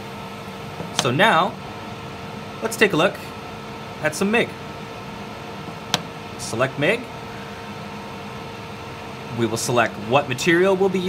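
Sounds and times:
cooling fan running: 0:00.0 - 0:11.0
welding machine hum and hiss: 0:00.0 - 0:11.0.

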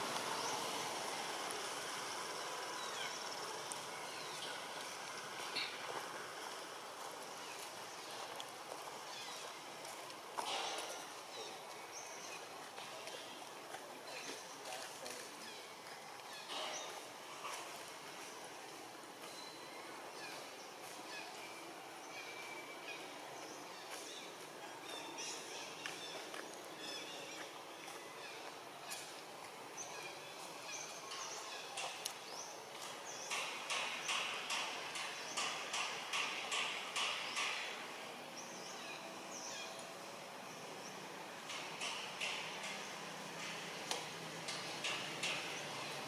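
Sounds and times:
birds chirping: 0:00.0 - 0:46.0.

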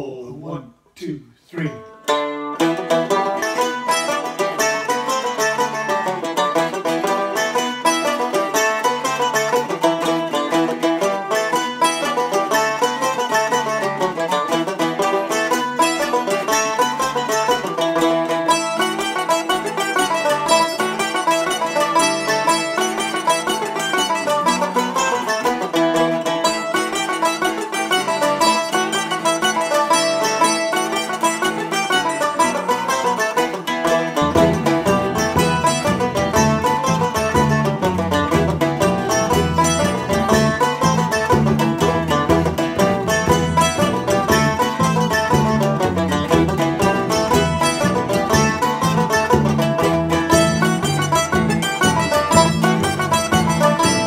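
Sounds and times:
jig on plucked strings: 0:01.6 - 0:54.0.

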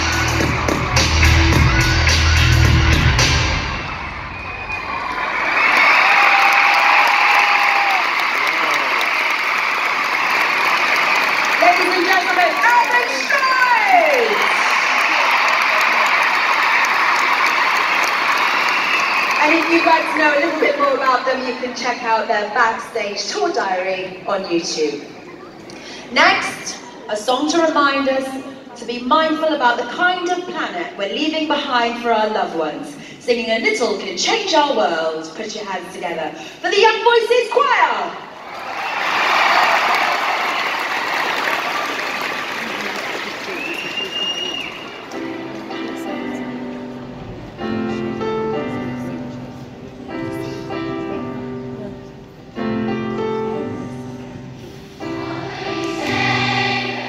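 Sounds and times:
high cheer: 0:00.0 - 0:20.9, 0:38.3 - 0:45.2
crowd applauding: 0:00.0 - 0:21.1, 0:38.4 - 0:46.1, 0:55.2 - 0:57.0.

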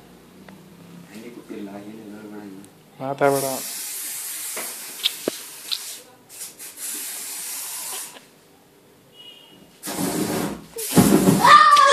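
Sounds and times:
spray igniting into fireball: 0:03.3 - 0:08.2, 0:09.8 - 0:11.4
aerosol spray can hissing: 0:03.3 - 0:08.3.

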